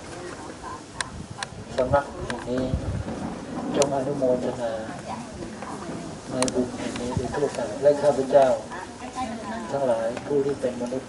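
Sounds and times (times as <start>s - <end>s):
monk reciting prayer into microphone: 0.3s - 5.1s.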